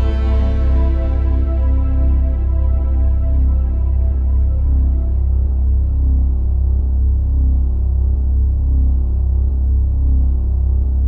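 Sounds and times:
ambient synthesizer music: 0.0 - 10.6.

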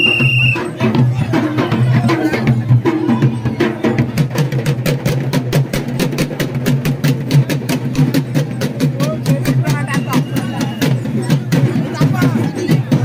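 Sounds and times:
drums beaten fast: 0.0 - 13.0
large crowd noise: 0.0 - 13.0.

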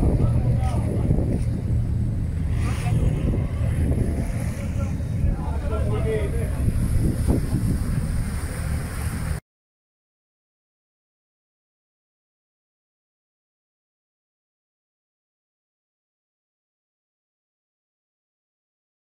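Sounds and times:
faint voices: 0.0 - 1.7, 2.3 - 7.5
boat engine rumble: 0.0 - 9.4
wind buffeting microphone: 0.0 - 9.4.

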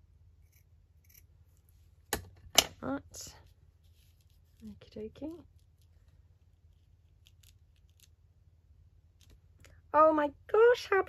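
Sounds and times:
faint rustles of lace on paper: 3.3 - 8.1.

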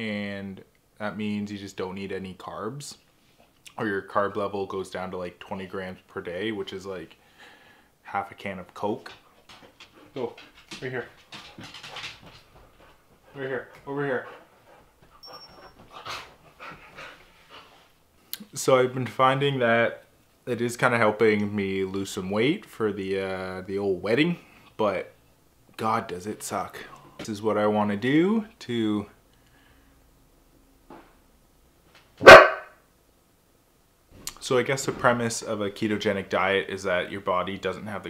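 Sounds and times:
dog barking: 32.2 - 32.8.

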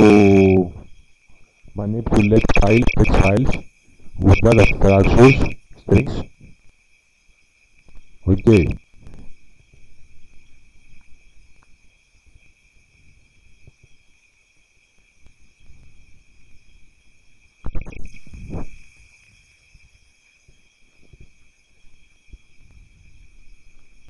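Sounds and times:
high-pitched electrical whine: 0.0 - 6.6, 7.8 - 9.4, 15.2 - 24.0.

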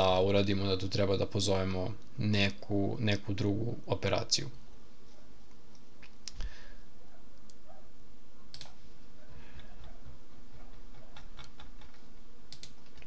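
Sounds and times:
low electrical hum: 0.0 - 13.0
computer input clicks: 11.1 - 13.0.

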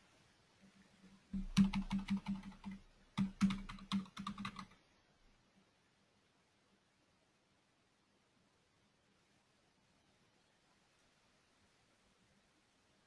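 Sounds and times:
computer keyboard typing: 1.4 - 4.8.

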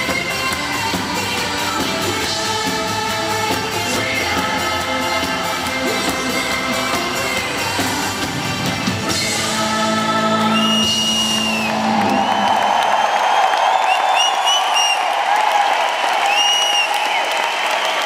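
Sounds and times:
live band playing: 0.0 - 12.4
crowd cheering and applauding: 0.0 - 18.0.

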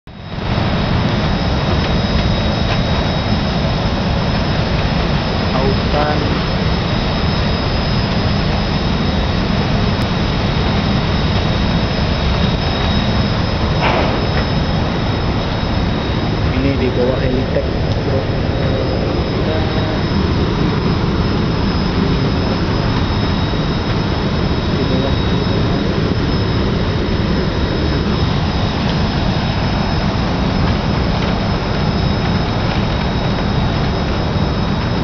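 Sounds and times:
deep machinery rumble: 0.1 - 35.0
thin high whines: 0.1 - 35.0.

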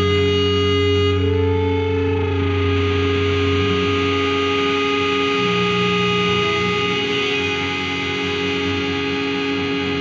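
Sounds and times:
distorted electric guitar: 0.0 - 10.0.

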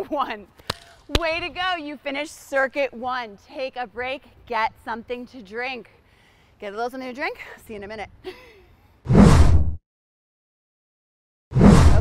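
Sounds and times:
whoosh transition effect: 9.1 - 9.8, 11.5 - 12.0.

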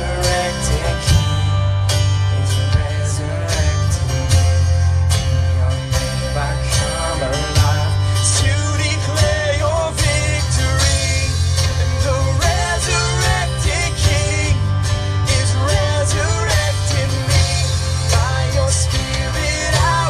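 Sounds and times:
bass line: 0.0 - 20.0
drums keeping steady beat: 0.0 - 20.0
guitars playing melody: 0.0 - 20.0.

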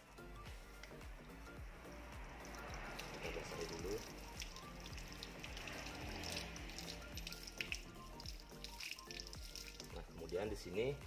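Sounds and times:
background music: 0.0 - 11.0
hose water splashing on reel: 2.4 - 11.0.

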